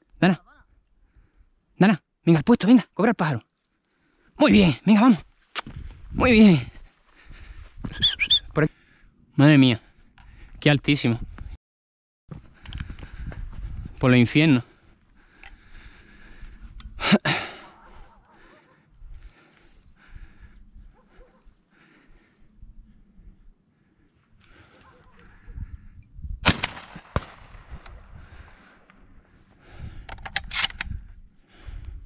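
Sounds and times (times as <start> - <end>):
shotgun shots: 26.4 - 27.8.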